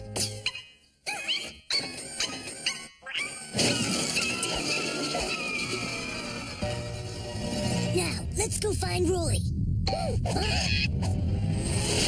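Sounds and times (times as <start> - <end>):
cartoon soundtrack music: 0.0 - 12.0
dense commotion: 7.6 - 12.0.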